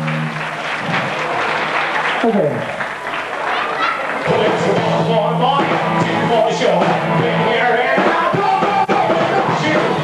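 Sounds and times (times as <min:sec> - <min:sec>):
audience applauding: 0:00.0 - 0:05.2.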